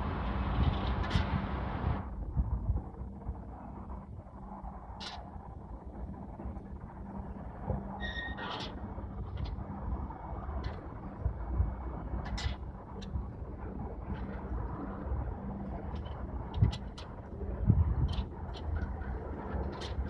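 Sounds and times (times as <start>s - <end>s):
distant traffic: 0.0s - 20.0s
wind on microphone: 0.0s - 20.0s.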